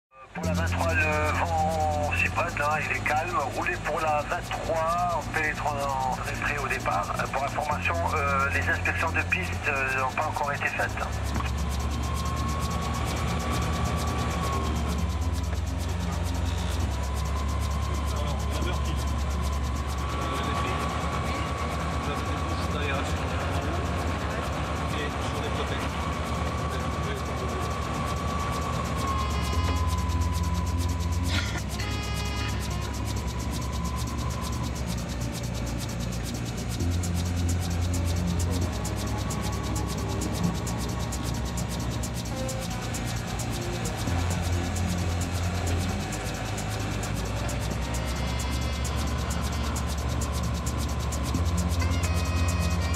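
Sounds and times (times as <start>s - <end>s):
aircraft engine droning: 0.1s - 52.9s.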